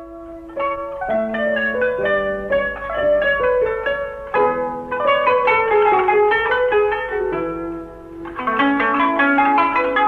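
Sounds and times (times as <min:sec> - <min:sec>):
plucked zither melody: 0:00.0 - 0:10.0.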